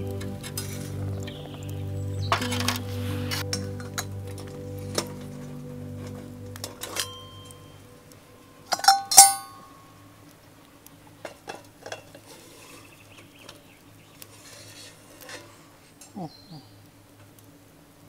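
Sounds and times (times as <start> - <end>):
background music: 0.0 - 9.7
wood fire crackling: 0.0 - 18.0
metal lid clinking and clattering: 8.7 - 9.6.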